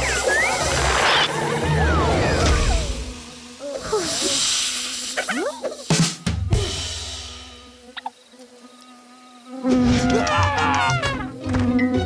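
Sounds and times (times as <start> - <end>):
steady hiss: 1.4 - 9.6.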